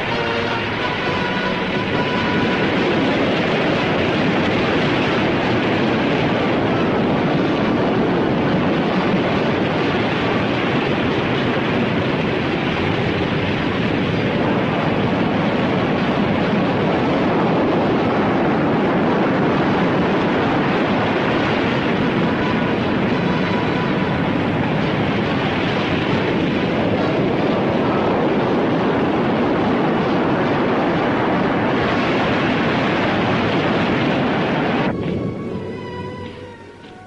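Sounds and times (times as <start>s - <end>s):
loud steady rumbling: 0.0s - 37.0s.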